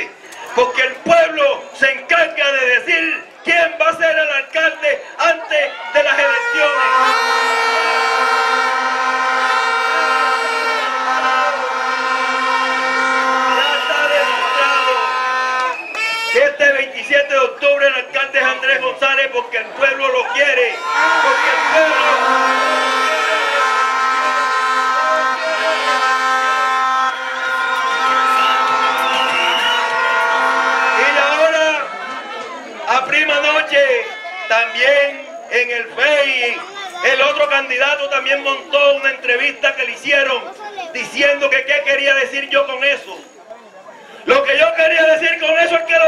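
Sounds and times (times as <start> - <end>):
crowd blowing horns: 5.7 - 16.9, 20.0 - 40.0
wavering higher horn tone: 6.3 - 16.4, 20.8 - 32.2
person shouting: 20.6 - 23.9.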